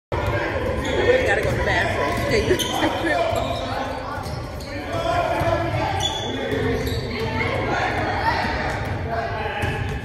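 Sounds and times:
voices talking: 0:00.1 - 0:09.9.

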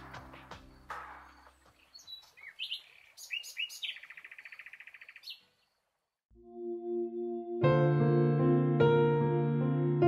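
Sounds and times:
songbird singing: 0:00.6 - 0:06.0.

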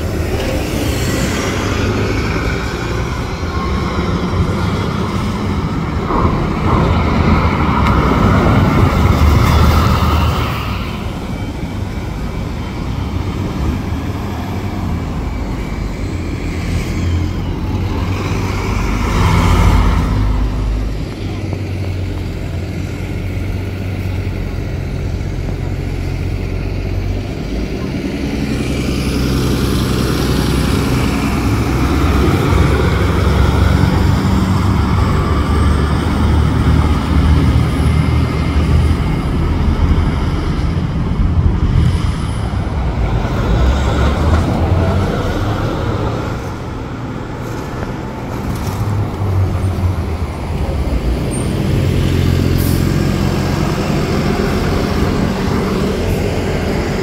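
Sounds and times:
bus engines pulling away: 0:00.0 - 0:57.0
street traffic: 0:00.0 - 0:57.0.

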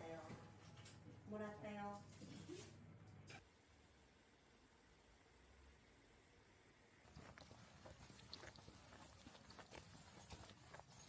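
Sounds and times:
outdoor background noise: 0:00.0 - 0:11.0
footsteps on paved road: 0:07.1 - 0:11.0.

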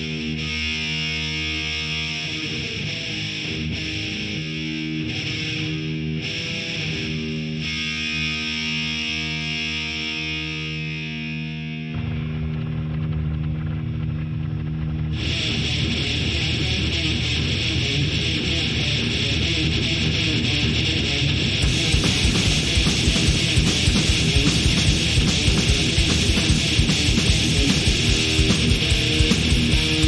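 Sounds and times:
distorted electric guitar chords: 0:00.0 - 0:30.0.

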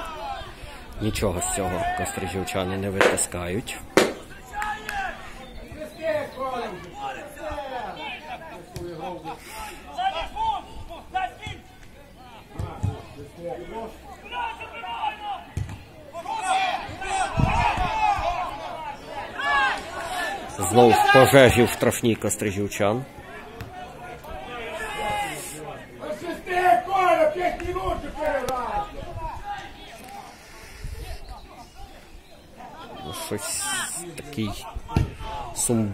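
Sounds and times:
voices talking and calling out: 0:00.0 - 0:35.9
people calling out: 0:14.0 - 0:21.9, 0:31.4 - 0:35.6.

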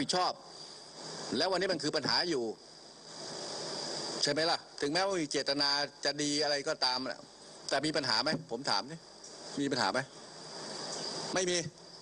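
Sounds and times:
faint hiss: 0:00.0 - 0:12.0
man speaking into a microphone: 0:11.3 - 0:11.8.

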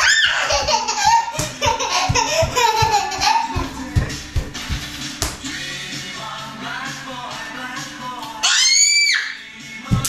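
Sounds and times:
music with steady beat: 0:00.3 - 0:08.4, 0:09.5 - 0:10.0.

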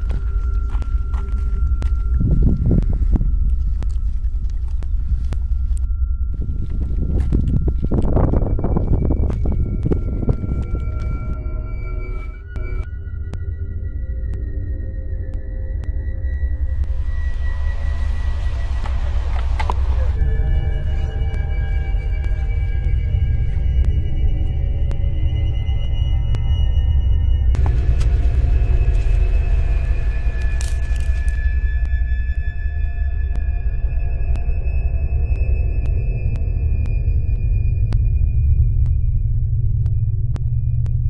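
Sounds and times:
deep low drone: 0:00.0 - 0:41.0
deep low rumble: 0:00.0 - 0:41.0
sustained high tones: 0:05.0 - 0:39.4.

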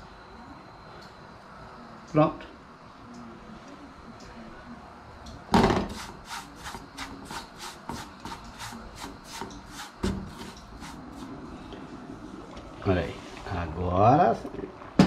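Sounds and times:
spatula scraping metal pan: 0:05.9 - 0:11.4.

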